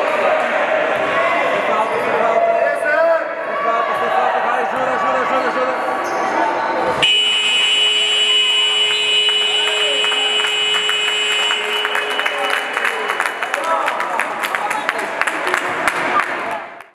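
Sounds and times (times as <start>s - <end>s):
crowd voices: 0.0s - 16.9s
scoreboard buzzer long tone: 7.0s - 12.5s.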